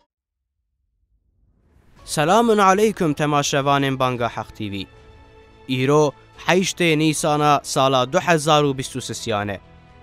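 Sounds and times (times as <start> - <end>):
soft background music: 1.8 - 10.0
man narrating: 2.0 - 5.0, 5.6 - 9.6.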